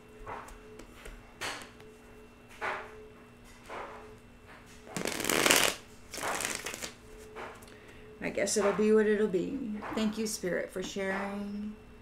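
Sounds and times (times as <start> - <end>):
cards shuffled by hand: 5.0 - 7.0.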